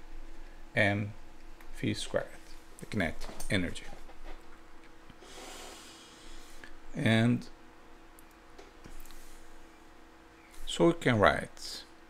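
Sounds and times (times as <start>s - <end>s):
person breathing in: 5.2s - 6.8s.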